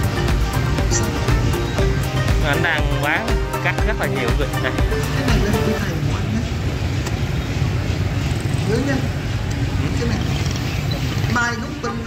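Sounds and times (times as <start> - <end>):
motorbike traffic rumble: 0.0 - 12.0
voices: 0.8 - 12.0.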